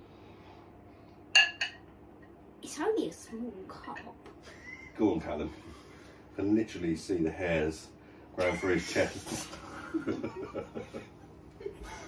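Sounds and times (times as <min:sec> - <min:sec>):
cup clinking on plate: 0:01.4 - 0:01.8.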